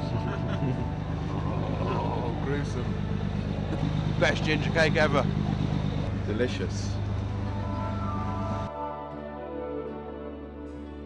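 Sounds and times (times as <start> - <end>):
faint voices: 0.0 - 8.0
boat engine rumbling: 0.0 - 8.7.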